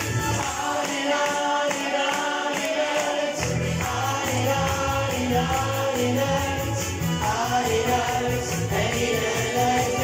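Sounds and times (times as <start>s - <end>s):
men singing into microphones: 0.0s - 10.0s
pop backing music: 0.0s - 10.0s.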